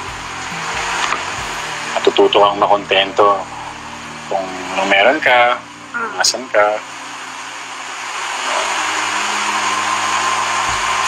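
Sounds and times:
faint high hum: 0.0 - 11.0
steady rushing air noise: 0.0 - 11.0.

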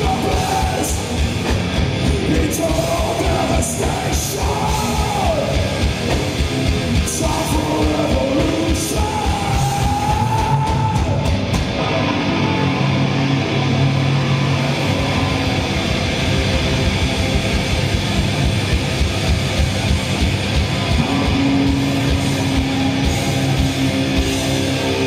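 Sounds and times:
drums with fast kick-drum: 0.0 - 12.0, 14.8 - 25.0
distorted electric guitars: 0.0 - 25.0.

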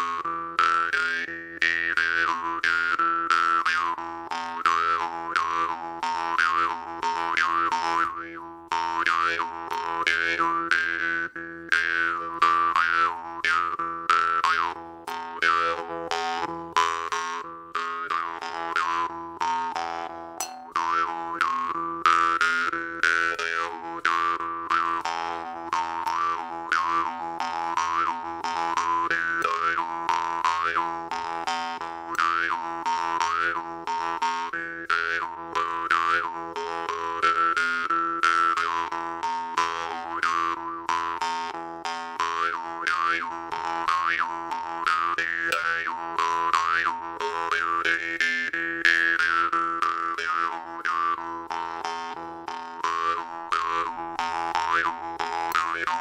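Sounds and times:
jaw harp twanging: 20.4 - 21.0, 45.5 - 45.9.

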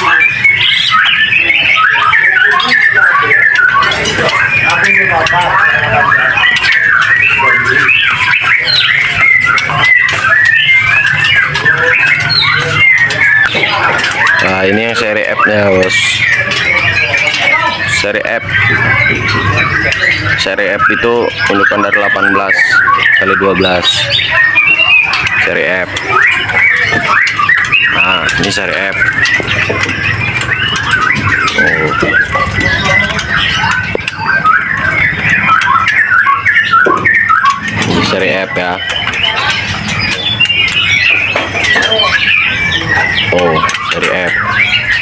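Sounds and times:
caged birds chirping in chorus: 0.0 - 45.0.

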